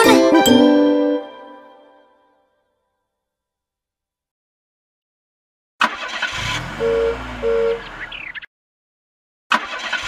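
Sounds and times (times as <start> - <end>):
cartoon car engine revving: 5.8 - 8.4, 9.5 - 10.0
car horn honks: 6.6 - 7.9.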